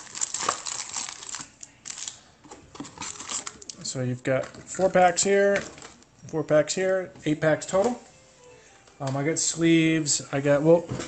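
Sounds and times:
card packs crinkling: 0.0 - 6.1.

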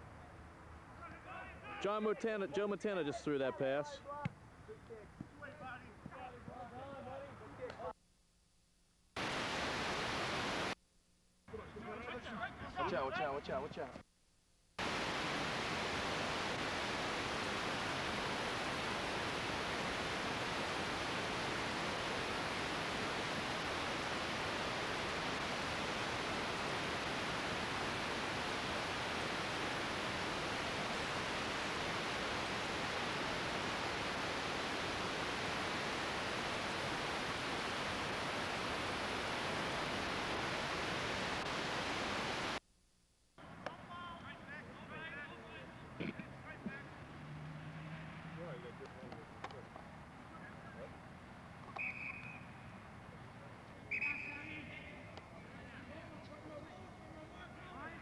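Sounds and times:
videotape hiss: 0.0 - 8.0, 8.9 - 14.0, 14.7 - 58.0.

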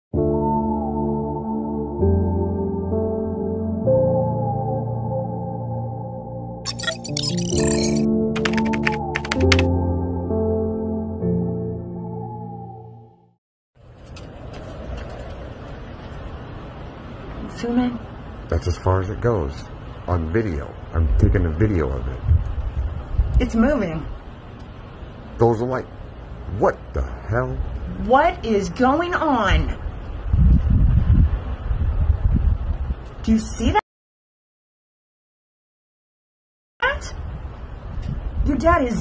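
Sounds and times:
low rumble and hiss: 15.0 - 33.7
wind buffeting microphone: 21.0 - 24.2, 29.4 - 33.8, 37.2 - 39.0.

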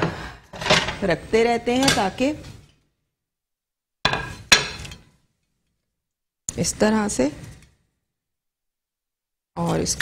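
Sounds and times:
plate clattering on countertop: 0.0 - 1.0, 4.1 - 5.2.

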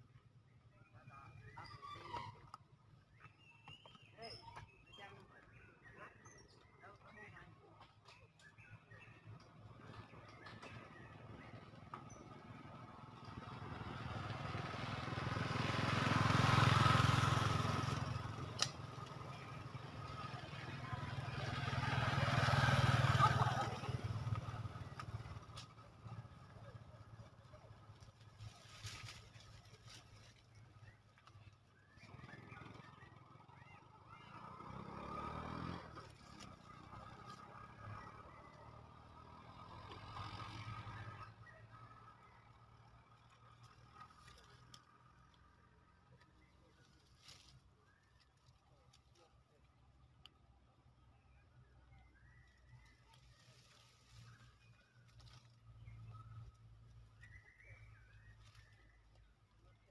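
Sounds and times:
vehicles passing by: 0.0 - 59.9.

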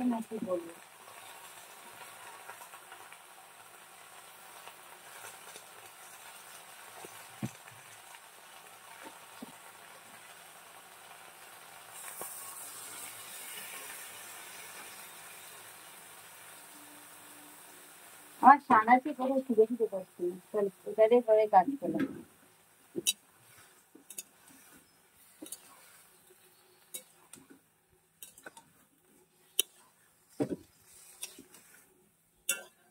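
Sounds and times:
faint sizzle of greens in oil: 0.0 - 32.9.

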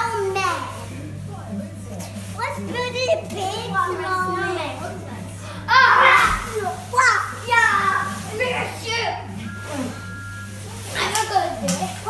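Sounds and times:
children shrieking and yelling: 5.7 - 6.6.

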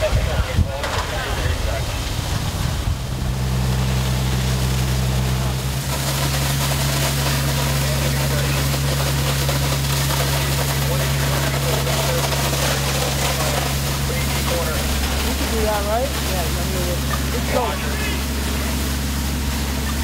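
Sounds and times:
hose water spraying hiss: 0.0 - 20.0
pump engine running steadily: 0.0 - 20.0.

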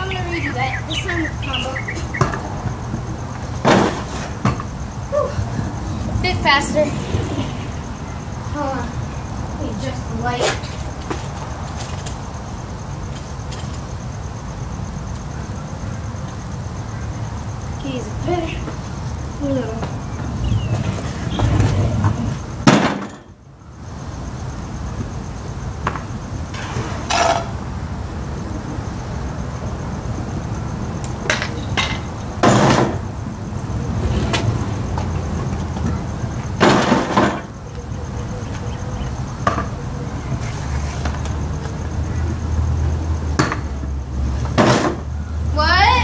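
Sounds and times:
steady background hiss: 0.0 - 46.0
scooter clattering on concrete: 18.2 - 23.3, 34.0 - 42.4.

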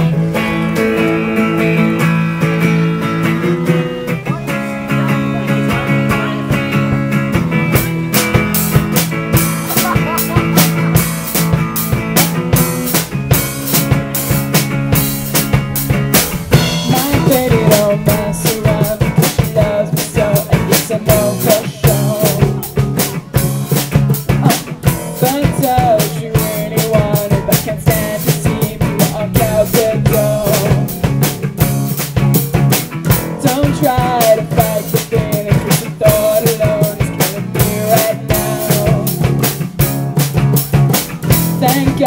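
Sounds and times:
drum kit beat: 0.0 - 42.0
live rock band playing: 0.0 - 42.0.

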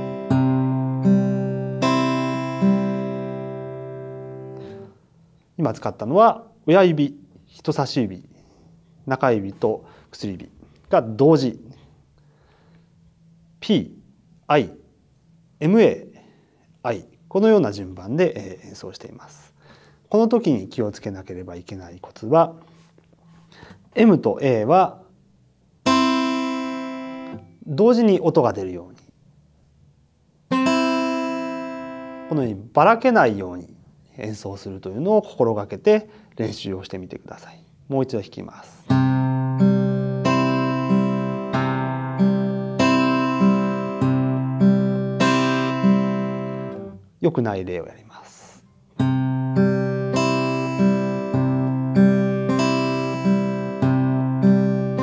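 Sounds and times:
acoustic guitar strings plucked: 0.0 - 4.9, 25.8 - 27.6, 30.5 - 32.3, 38.9 - 47.0, 48.9 - 55.0.

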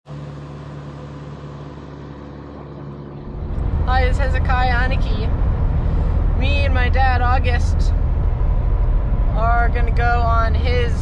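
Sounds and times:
car engine hum from inside: 0.0 - 11.0
low rumble: 0.1 - 11.0.

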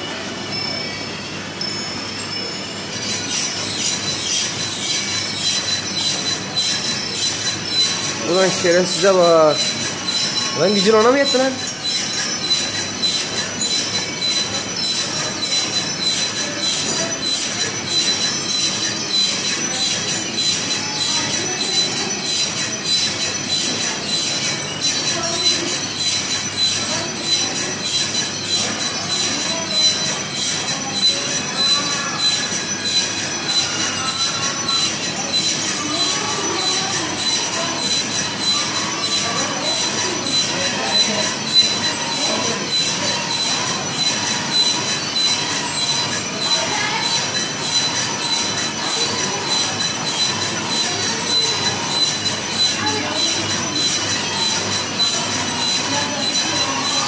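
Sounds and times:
machine high-pitched whine: 0.0 - 57.0
mechanical rattle: 2.8 - 57.0.

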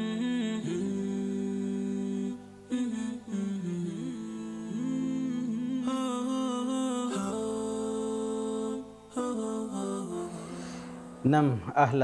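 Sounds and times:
wordless hummed vocal melody: 0.0 - 12.0.

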